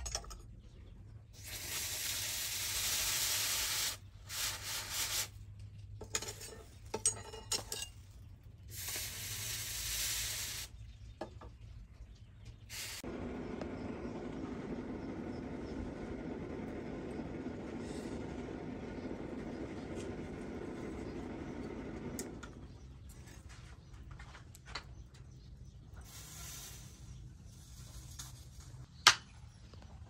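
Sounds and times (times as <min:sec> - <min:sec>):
hot blade hissing in water: 0:01.4 - 0:05.4, 0:08.7 - 0:10.7, 0:12.7 - 0:13.1
low rumble: 0:11.7 - 0:23.5.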